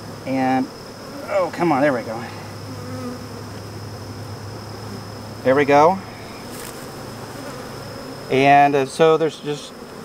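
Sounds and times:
honeybees buzzing: 0.0s - 10.0s.

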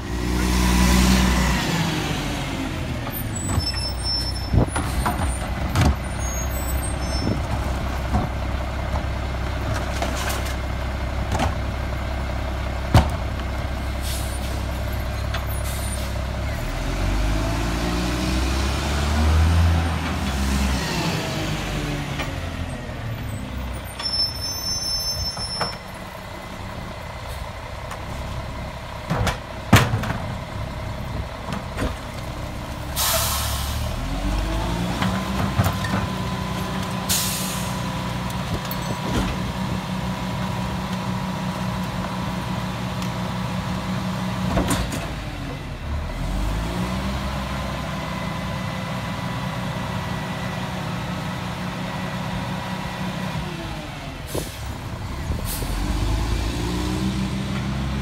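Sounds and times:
diesel truck engines revving: 0.0s - 58.0s
air brake hiss: 14.0s - 14.7s, 33.0s - 33.9s, 37.1s - 37.8s.

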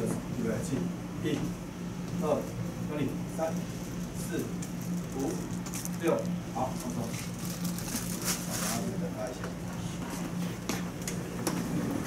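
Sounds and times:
steady low hum: 0.0s - 12.0s.

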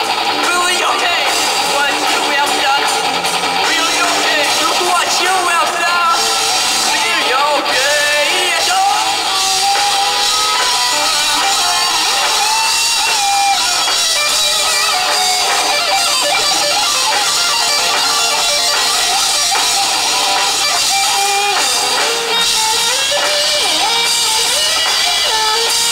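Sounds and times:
drums: 0.0s - 25.9s
electric guitar melody: 0.0s - 25.9s
second guitar: 0.0s - 25.9s.

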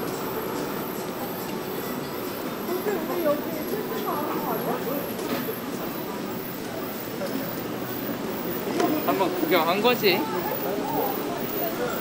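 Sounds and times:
passersby talking: 0.0s - 12.0s
traffic noise: 0.0s - 12.0s.

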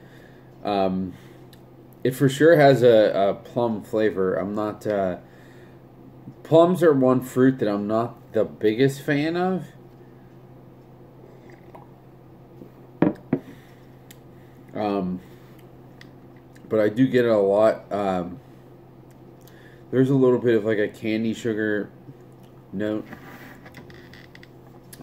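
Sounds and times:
steady low hum: 0.0s - 25.0s
sipping and swallowing: 11.3s - 12.0s.

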